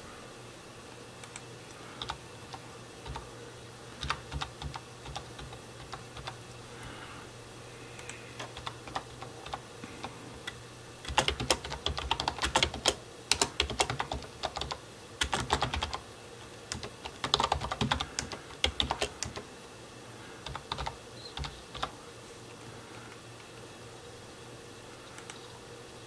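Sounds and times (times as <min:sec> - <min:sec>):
typing on computer keyboard: 0:01.2 - 0:03.3, 0:04.0 - 0:06.4, 0:08.0 - 0:16.0, 0:16.7 - 0:19.5, 0:20.4 - 0:22.0.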